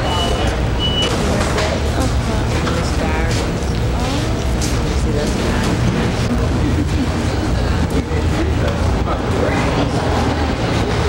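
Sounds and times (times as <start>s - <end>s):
indistinct voices: 0.0s - 11.0s
machinery rumbling: 0.0s - 11.0s.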